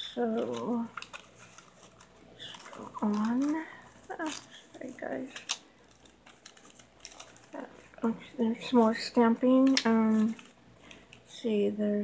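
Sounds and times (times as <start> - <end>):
paper pages turning: 0.1 - 11.3.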